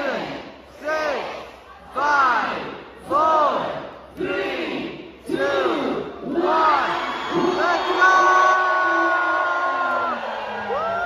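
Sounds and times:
crowd shouting in rhythm: 0.0 - 11.0.

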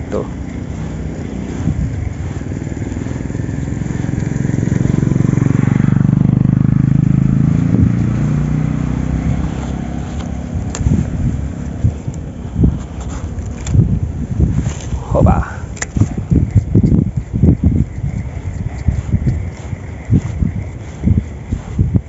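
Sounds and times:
vehicle engine passing: 0.0 - 15.4
sharp clicks and taps: 15.7 - 17.1.

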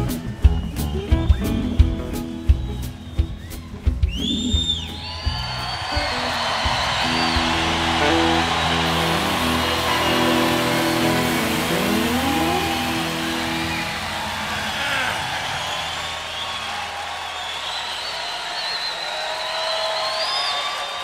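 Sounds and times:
audience cheering: 0.0 - 21.0
high whistles: 0.0 - 21.0
guitar band chord ringing: 7.2 - 14.9.

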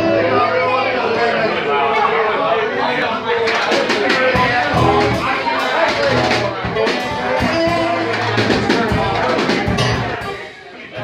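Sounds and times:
bass guitar notes: 0.0 - 1.0, 4.4 - 10.4
people talking: 0.0 - 11.0
drum kit strikes: 3.7 - 10.4.

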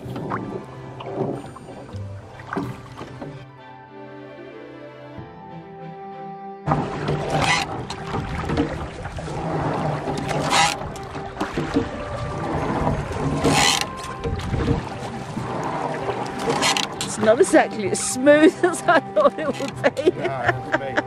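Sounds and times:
oar splashing and knocking: 0.0 - 3.5, 6.7 - 21.0
rushing water: 0.0 - 3.5, 6.7 - 21.0.

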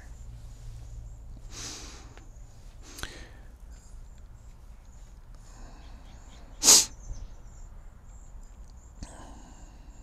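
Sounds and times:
person's sharp burst of breath: 6.6 - 6.9.

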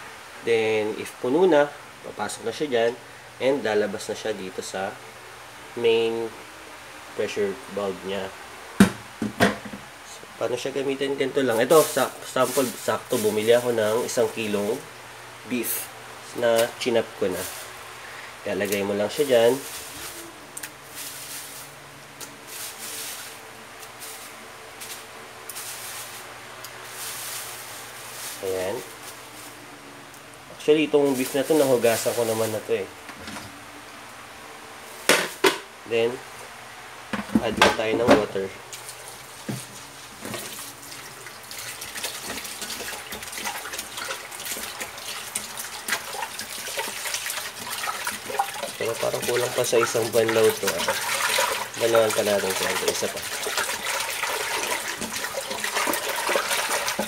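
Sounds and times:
faint steady hum: 0.0 - 57.0
plastic bag rustling: 11.2 - 14.8, 16.6 - 17.7, 18.5 - 21.8, 22.4 - 29.6, 30.8 - 32.9, 38.8 - 57.0
hand stirring meat in water: 40.3 - 57.0
tap water running into metal pot: 40.3 - 57.0.

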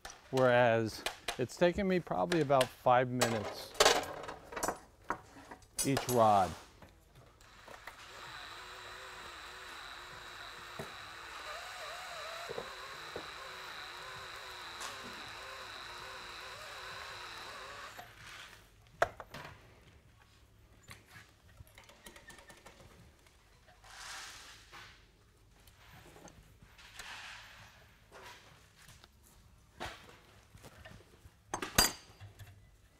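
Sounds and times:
drill whining while cutting steel: 7.4 - 18.2.

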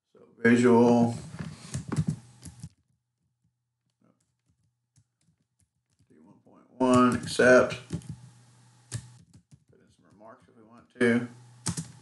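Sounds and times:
faint low hum: 6.0 - 12.0
computer keyboard keystrokes: 6.8 - 8.2, 8.9 - 10.2, 11.6 - 12.0.

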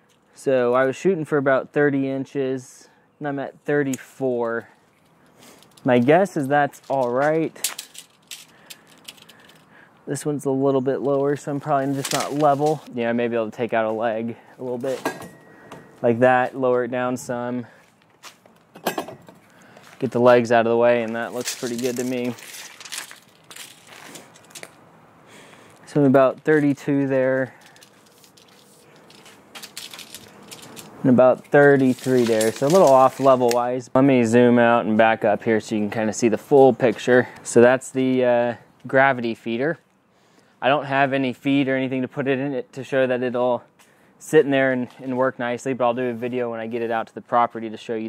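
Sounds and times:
low steady hiss: 0.0 - 48.0
light handling noise: 11.0 - 13.0, 25.5 - 33.7
faint rustle: 27.2 - 33.5.

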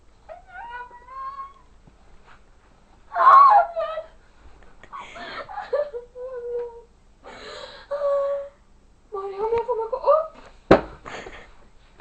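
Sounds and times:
girl whimpering: 3.1 - 4.2.

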